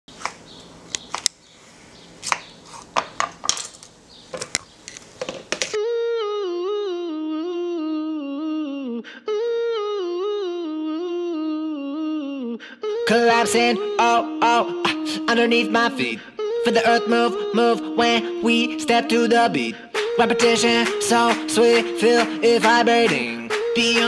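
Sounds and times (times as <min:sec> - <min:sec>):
person humming melody: 0:05.8 - 0:24.0.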